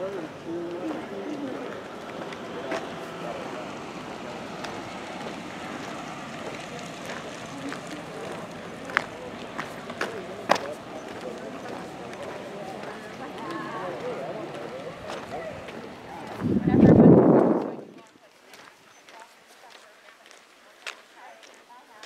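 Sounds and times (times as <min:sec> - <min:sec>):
distant people talking: 0:00.0 - 0:22.0.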